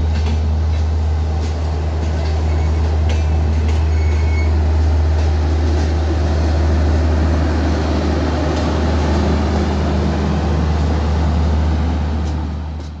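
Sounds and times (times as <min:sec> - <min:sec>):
train wheels on rails: 0:00.0 - 0:13.0.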